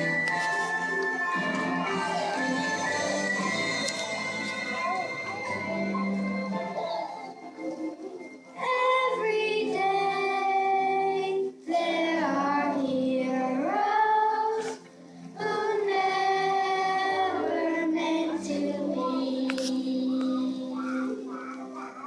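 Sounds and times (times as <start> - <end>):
musical accompaniment: 0.0 - 22.0
child singing: 8.6 - 14.8, 15.4 - 21.5.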